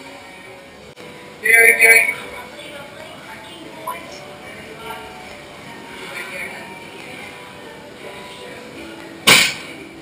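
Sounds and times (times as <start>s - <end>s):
sharp smack: 9.3s - 9.7s.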